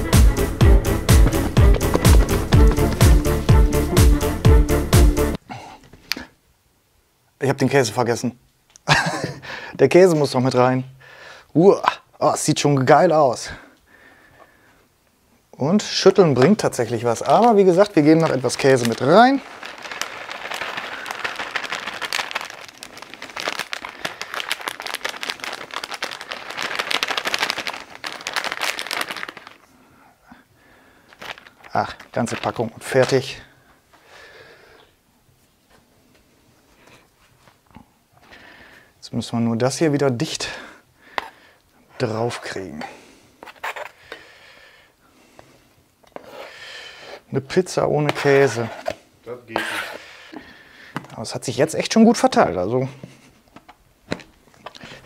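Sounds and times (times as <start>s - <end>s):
plastic bag crinkling: 16.6s - 29.8s, 31.0s - 33.5s, 54.1s - 55.0s.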